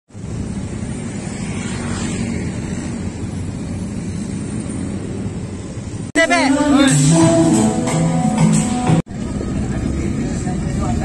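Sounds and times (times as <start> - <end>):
steady outdoor rumble and hiss: 0.1 - 11.0.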